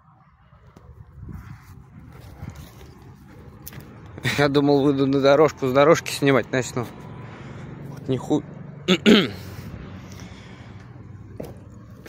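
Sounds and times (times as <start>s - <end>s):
footsteps on dirt and grass: 1.3s - 5.3s, 10.1s - 12.0s.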